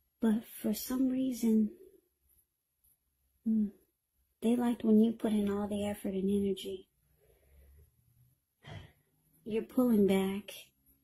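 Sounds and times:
intake of breath: 7.1s - 8.0s, 8.6s - 9.2s.

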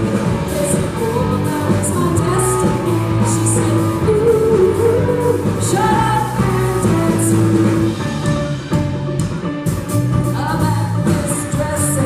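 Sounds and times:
live rock band: 0.0s - 12.0s
woman singing into microphone: 0.1s - 7.8s, 10.3s - 12.0s.

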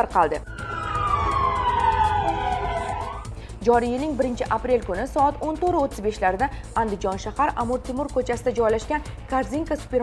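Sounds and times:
siren wailing: 0.4s - 3.4s.

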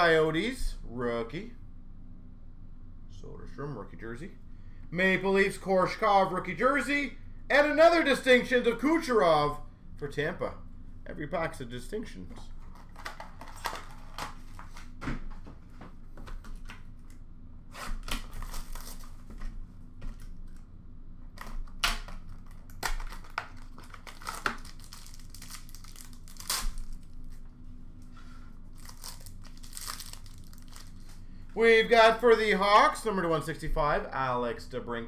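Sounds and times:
rustling of cardboard and cards: 12.5s - 17.1s
packaging crinkling and tearing: 12.6s - 15.0s, 17.8s - 19.5s, 21.4s - 27.4s, 28.6s - 31.2s.

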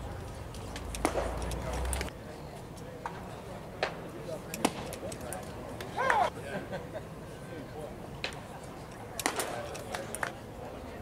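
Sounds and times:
baseball bat crack: 0.6s - 2.1s, 3.8s - 6.3s, 9.2s - 10.3s.

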